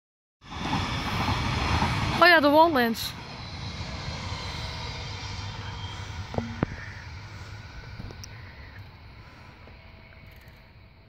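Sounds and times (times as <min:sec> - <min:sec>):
train wheels rumbling on rails: 0:00.4 - 0:11.0.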